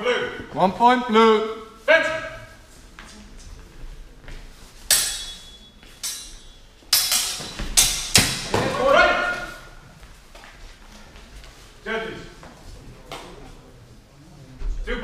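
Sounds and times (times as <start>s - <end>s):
swords clashing with metallic clangs: 4.8s - 9.4s
person shouting: 8.6s - 9.6s.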